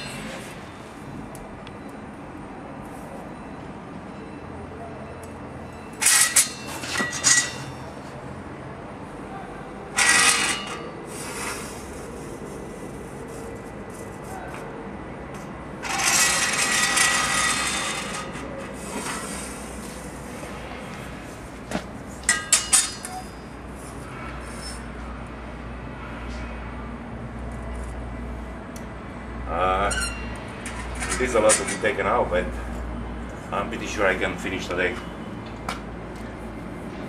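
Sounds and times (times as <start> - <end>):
metal scraping on anvil: 5.8 - 8.0, 10.0 - 12.0, 15.8 - 19.7, 22.2 - 23.4, 29.9 - 32.0.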